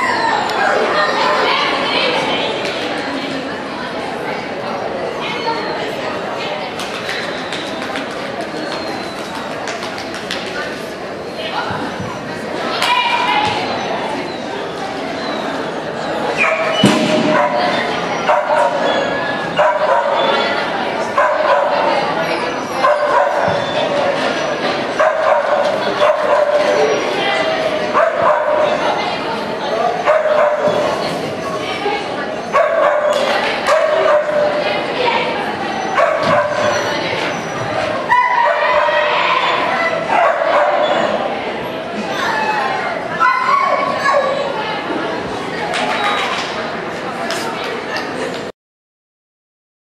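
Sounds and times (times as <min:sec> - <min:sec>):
people's voices: 0:00.0 - 0:48.5.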